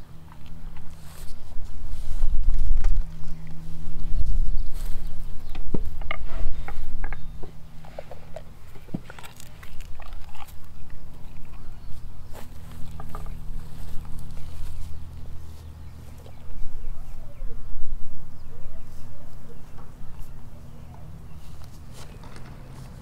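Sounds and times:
low hum: 0:00.0 - 0:23.0.

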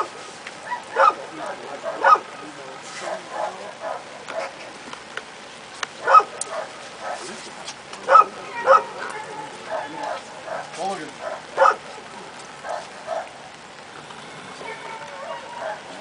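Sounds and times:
dog barking: 0:00.0 - 0:02.3, 0:03.0 - 0:04.8, 0:06.0 - 0:07.4, 0:08.0 - 0:09.0, 0:09.6 - 0:11.9, 0:12.6 - 0:13.4, 0:15.2 - 0:16.0
people talking quietly: 0:00.0 - 0:16.0.

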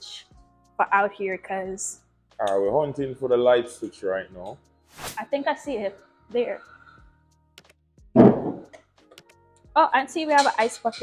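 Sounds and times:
faint background music: 0:00.0 - 0:11.0
loud dull thump: 0:08.2 - 0:08.7.

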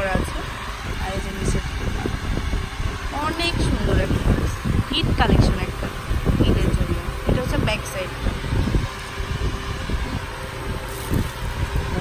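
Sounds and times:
low rumbling: 0:00.0 - 0:12.0.

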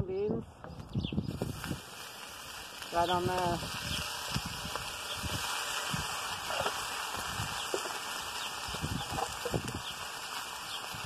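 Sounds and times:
small crackles: 0:00.8 - 0:11.0
beans sizzling in grease: 0:01.3 - 0:11.0.

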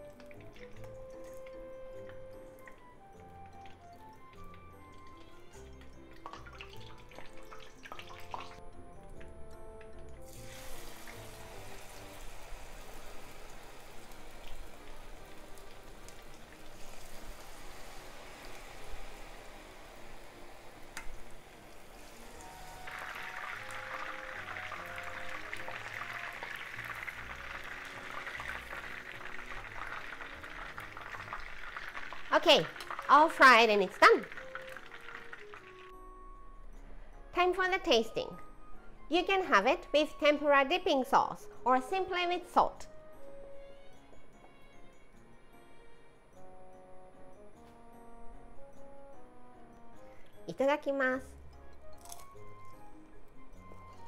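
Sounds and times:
background music: 0:00.0 - 0:54.0
oil sizzling in frying pan: 0:10.3 - 0:35.9.

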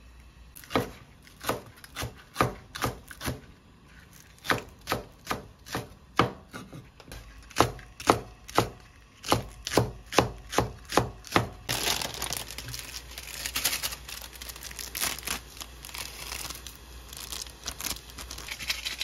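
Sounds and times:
knife chopping on wooden board: 0:00.6 - 0:03.4, 0:04.4 - 0:11.6.

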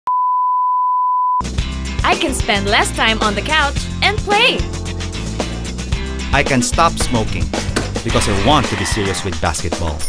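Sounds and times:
background music with low beat: 0:01.4 - 0:10.0.

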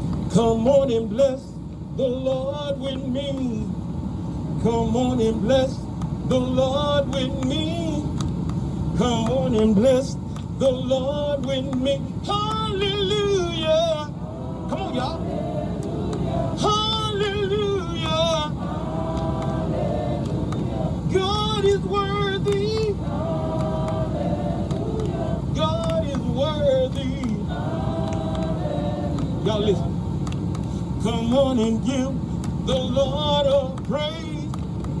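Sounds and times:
low rumble: 0:00.0 - 0:35.0
call and response gospel singing: 0:00.1 - 0:35.0.

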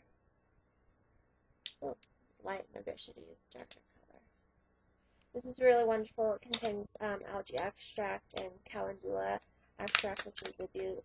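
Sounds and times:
woman speaking: 0:01.7 - 0:03.8, 0:05.4 - 0:11.0.

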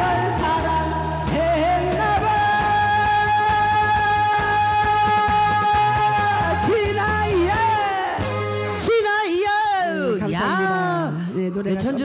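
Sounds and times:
backing track with bass and drums: 0:00.0 - 0:09.0.

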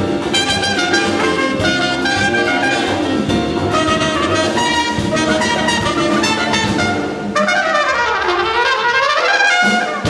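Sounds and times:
drums and bass: 0:00.0 - 0:10.0
trumpet: 0:00.0 - 0:10.0
tenor saxophone: 0:00.3 - 0:08.3.

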